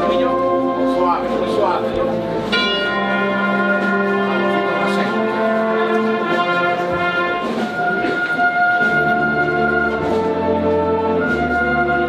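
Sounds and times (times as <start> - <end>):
wind band playing a march: 0.0 - 12.0.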